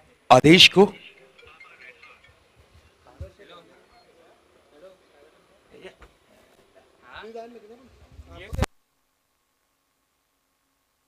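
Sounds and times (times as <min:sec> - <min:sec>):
faint distant voices: 0:00.0 - 0:08.7.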